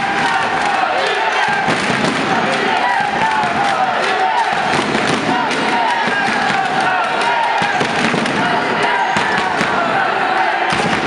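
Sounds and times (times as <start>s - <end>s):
crowd shouting and cheering: 0.0s - 11.0s
sharp claps and bangs: 0.0s - 11.0s.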